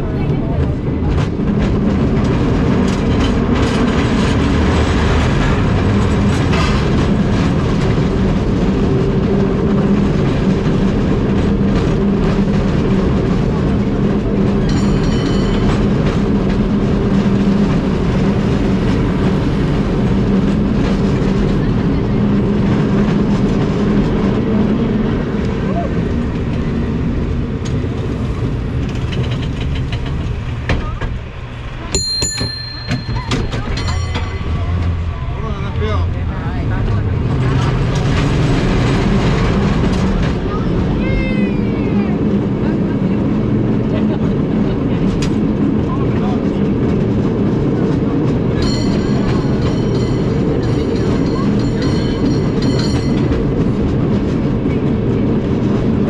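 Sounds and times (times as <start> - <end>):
cable car rumbling on rails: 0.0 - 56.0
high ringing tone: 32.0 - 35.0.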